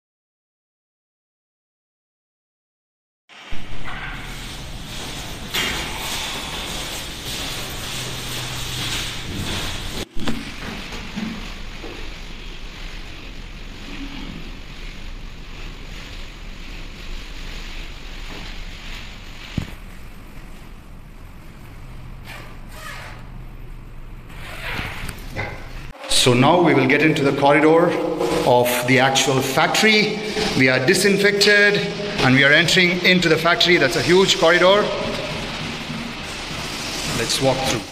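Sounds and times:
coveralls rustling: 0:03.6 - 0:26.0, 0:27.2 - 0:37.9.

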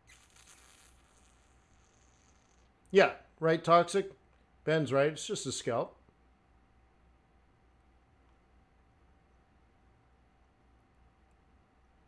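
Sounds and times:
faint high hiss: 0:00.0 - 0:06.2.

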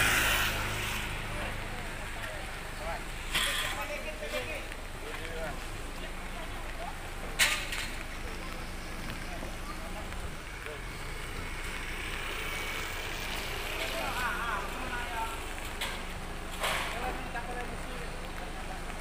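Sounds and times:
faint voices: 0:01.0 - 0:19.0.

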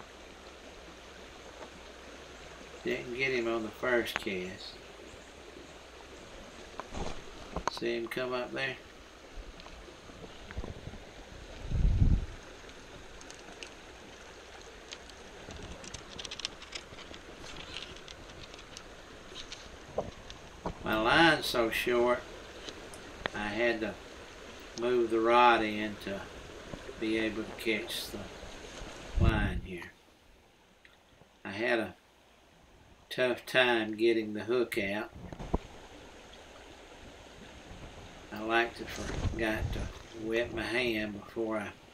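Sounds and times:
stream running over rocks: 0:00.0 - 0:41.9
low rumble on microphone: 0:09.4 - 0:13.2, 0:29.0 - 0:29.8, 0:38.8 - 0:40.7.

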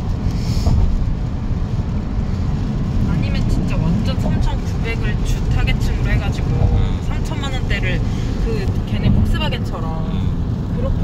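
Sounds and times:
road and tyre rumble in car: 0:00.0 - 0:11.0.

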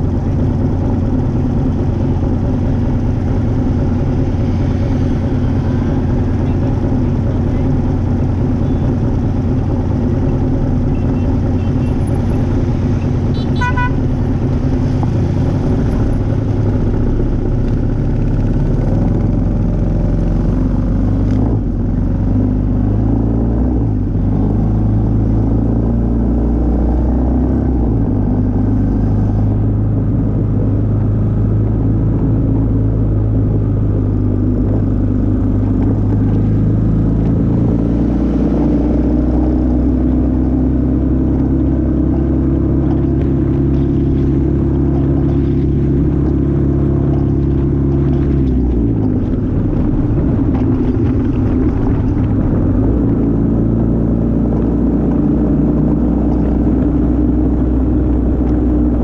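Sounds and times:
vehicle engine running in traffic: 0:00.0 - 0:59.0
car horn toot: 0:10.9 - 0:12.0, 0:13.3 - 0:14.1.

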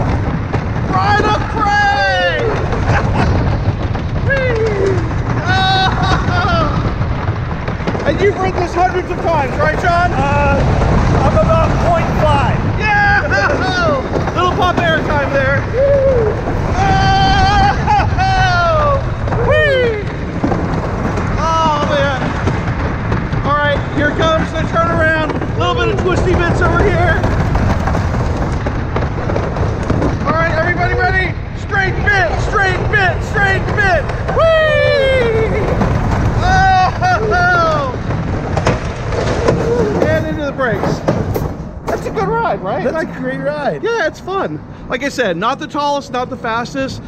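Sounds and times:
riders whooping and yelling: 0:00.0 - 0:40.9
roller coaster rumbling on track: 0:00.0 - 0:47.0.

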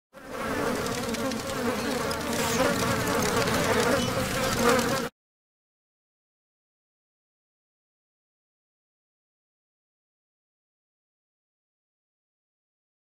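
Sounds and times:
insect swarm buzzing: 0:00.2 - 0:05.1.

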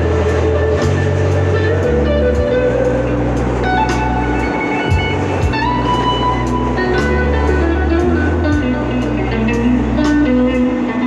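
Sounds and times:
guitar melody over a beat: 0:00.0 - 0:11.0
subway car rumbling: 0:00.0 - 0:11.0.

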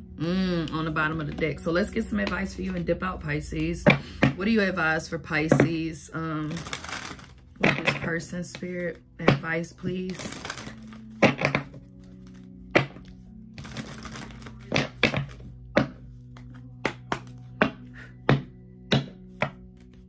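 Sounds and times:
soft background music: 0:00.0 - 0:20.0
cards being riffled: 0:13.6 - 0:15.4.

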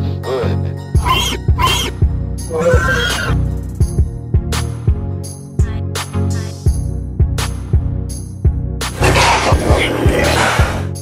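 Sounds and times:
background music with steady beat: 0:00.0 - 0:11.0
dinosaur call sound effect: 0:01.0 - 0:03.4.

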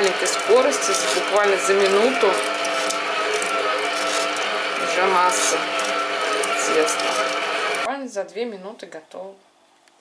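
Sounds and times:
stand mixer motor humming: 0:00.0 - 0:07.9.

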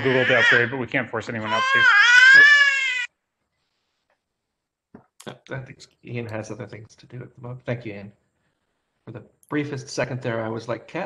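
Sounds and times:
high-pitched wailing cry: 0:00.0 - 0:00.8, 0:01.4 - 0:03.1.

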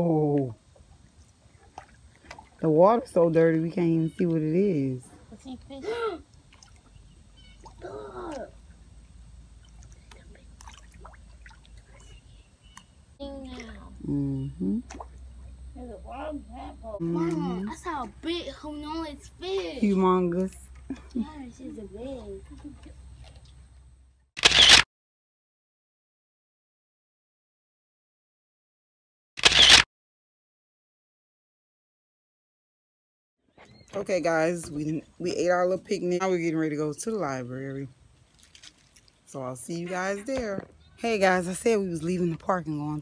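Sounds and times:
camera shutter click: 0:24.4 - 0:24.8, 0:29.4 - 0:29.8.

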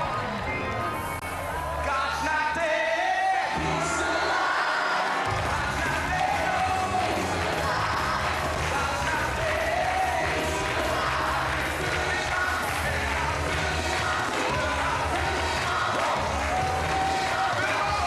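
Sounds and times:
congregation cheering and singing: 0:00.0 - 0:18.0.

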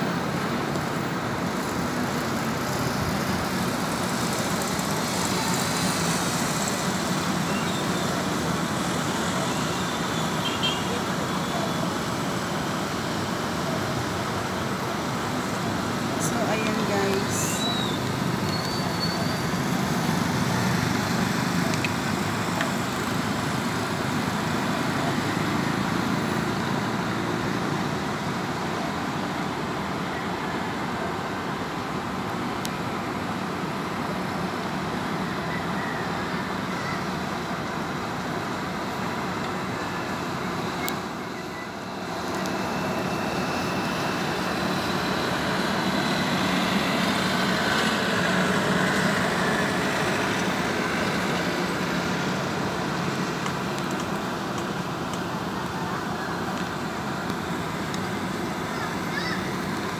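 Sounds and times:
distant road traffic: 0:00.0 - 0:59.9.

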